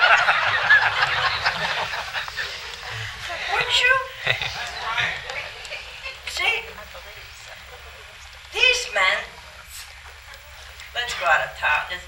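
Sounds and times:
audience laughing: 0.0 - 8.0.

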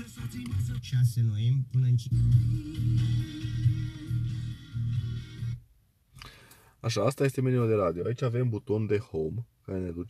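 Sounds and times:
radio music through car speakers: 0.0 - 5.6.

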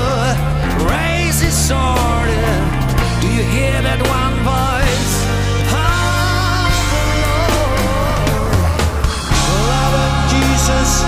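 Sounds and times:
bending lead guitar notes: 0.0 - 11.0
progressive rock band playing: 0.0 - 11.0.

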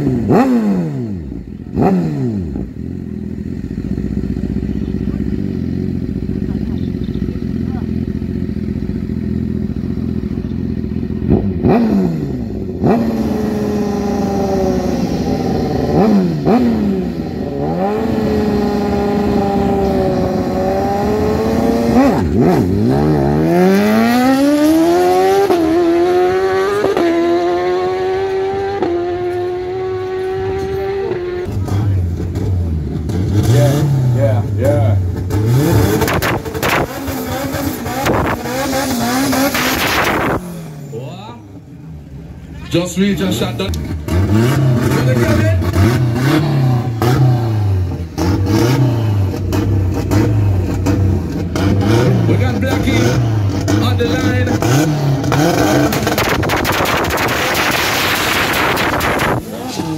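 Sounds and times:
car engine idling and revving: 0.0 - 59.9
motorcycle engine revving: 0.0 - 59.9.

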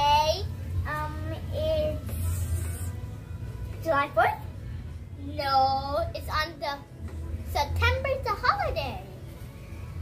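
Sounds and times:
child singing drawn-out notes: 0.0 - 2.9.

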